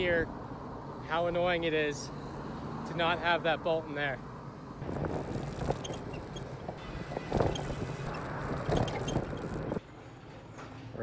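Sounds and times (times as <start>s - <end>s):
wind: 0.0s - 11.0s
tyre noise: 4.8s - 9.8s.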